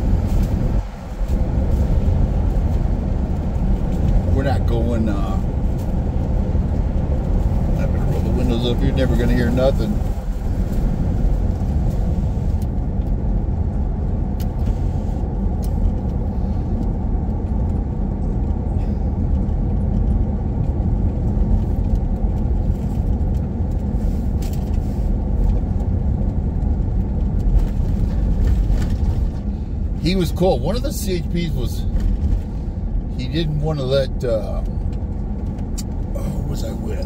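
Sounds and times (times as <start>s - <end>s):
car tyres and engine rumble: 0.0s - 37.0s.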